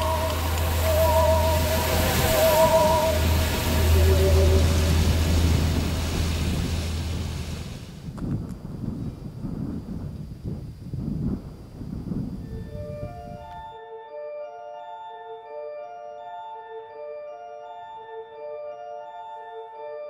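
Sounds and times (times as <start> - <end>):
held music tones: 0.0 - 7.9
stream water rushing: 0.0 - 8.1
low rumbling: 0.0 - 13.6.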